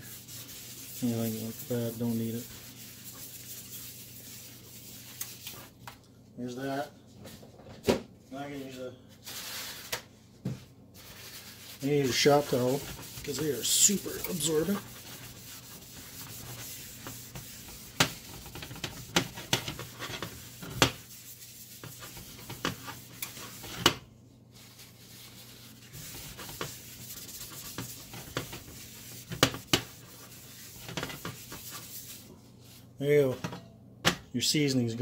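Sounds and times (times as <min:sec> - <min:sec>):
paper towel rubbing skillet: 0:00.0 - 0:05.7, 0:11.0 - 0:33.5.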